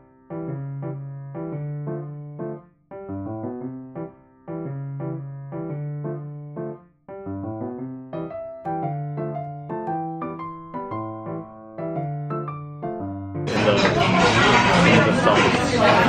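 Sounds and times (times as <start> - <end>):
gentle piano melody: 0.0 - 16.0.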